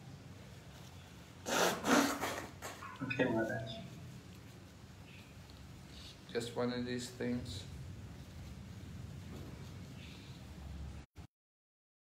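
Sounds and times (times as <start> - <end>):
faint room hiss: 0.0 - 11.1.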